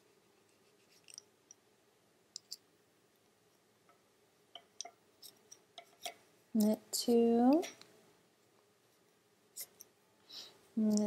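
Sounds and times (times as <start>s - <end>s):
knitting needles clicking: 3.9s - 7.9s, 10.8s - 11.0s.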